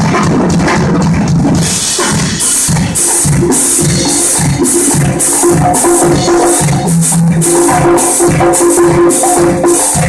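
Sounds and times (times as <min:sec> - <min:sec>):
shaker rhythm: 0:00.0 - 0:10.0
tuba bass notes: 0:03.2 - 0:10.0.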